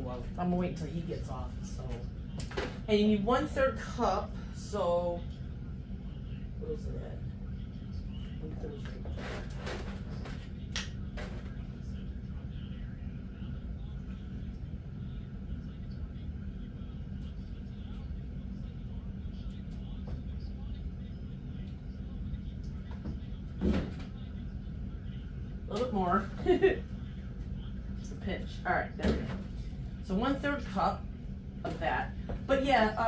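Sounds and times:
low appliance hum: 0:00.0 - 0:33.0.

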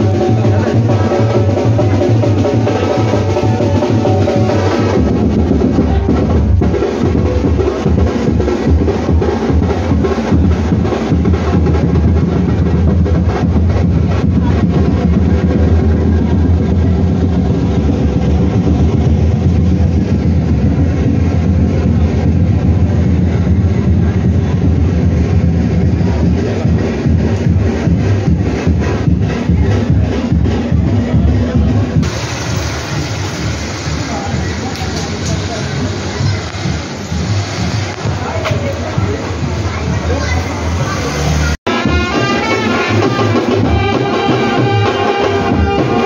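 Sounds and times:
drums beaten in fast rhythm: 0:00.0 - 0:46.0.

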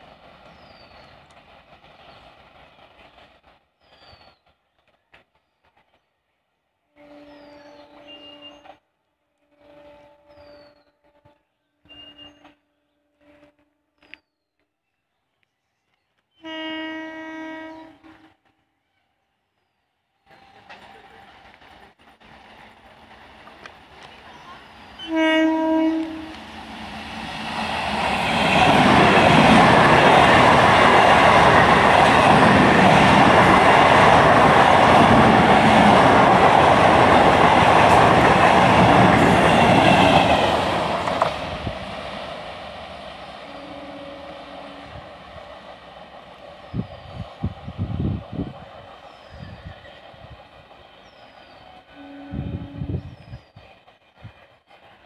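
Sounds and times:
train wheels on rails: 0:00.0 - 0:06.3, 0:20.2 - 0:55.0
train horn: 0:06.8 - 0:14.1, 0:16.4 - 0:18.8, 0:24.4 - 0:26.6, 0:38.7 - 0:41.5, 0:43.3 - 0:45.2, 0:51.5 - 0:53.2.

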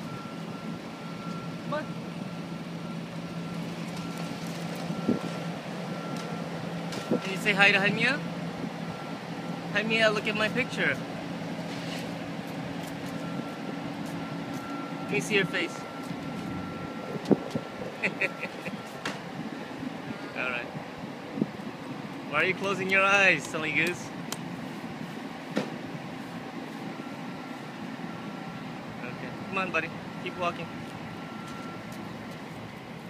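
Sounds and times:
faint steady whine: 0:00.0 - 0:33.0
low mechanical drone: 0:00.0 - 0:33.0
traffic or machinery hum: 0:00.0 - 0:33.0.

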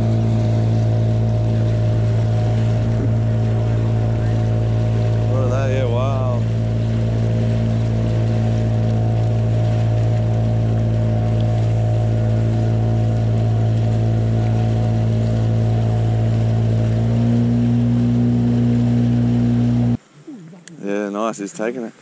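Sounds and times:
outboard motor running: 0:00.0 - 0:20.0
wake rushing against hull: 0:00.0 - 0:20.0.

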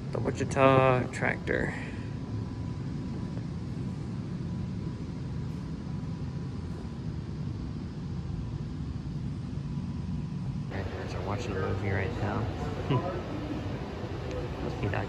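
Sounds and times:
low indoor background rumble: 0:00.0 - 0:15.0.

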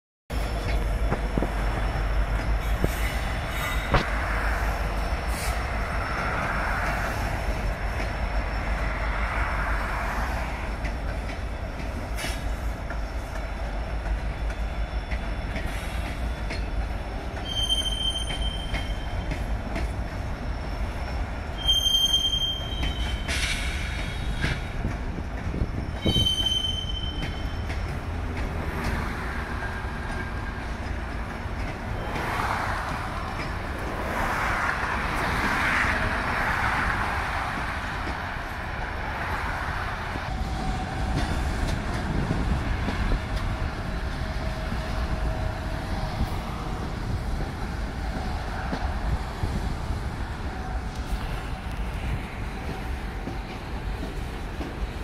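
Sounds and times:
freight train rumbling past: 0:00.3 - 0:55.0
high-pitched wheel squeals: 0:14.3 - 0:19.5, 0:20.1 - 0:24.7, 0:25.4 - 0:28.8.

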